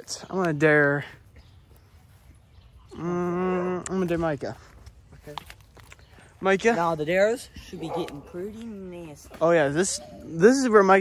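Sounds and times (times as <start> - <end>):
faint outdoor background noise: 0.0 - 11.0
person humming: 2.9 - 3.9.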